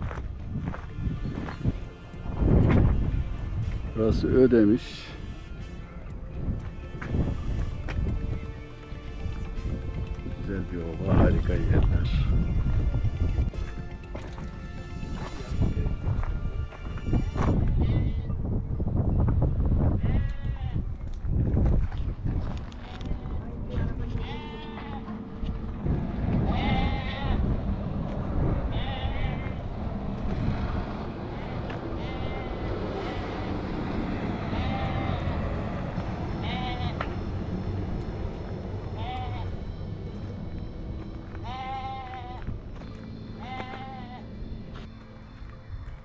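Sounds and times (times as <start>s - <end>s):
sheep bleating: 17.7s - 18.4s, 22.8s - 25.3s, 26.3s - 27.5s, 28.7s - 29.6s, 31.3s - 33.6s, 34.4s - 35.4s, 36.4s - 37.1s, 38.8s - 39.8s, 41.4s - 42.6s, 43.3s - 44.4s
low steady rumble: 21.4s - 43.4s.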